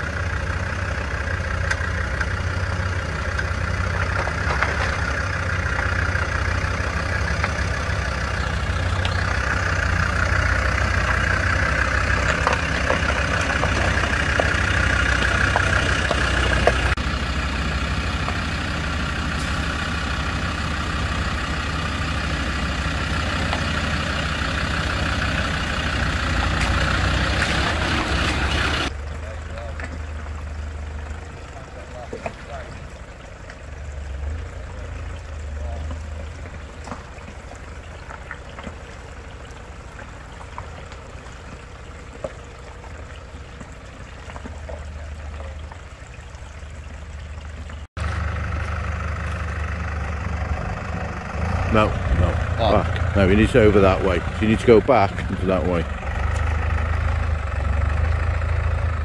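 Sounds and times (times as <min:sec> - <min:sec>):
engine running at low revs: 0:47.6 - 0:59.0.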